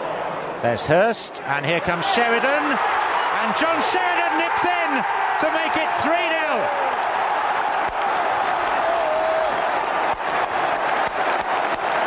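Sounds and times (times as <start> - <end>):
stadium crowd cheering: 1.4 - 12.0
crowd clapping: 4.2 - 12.0.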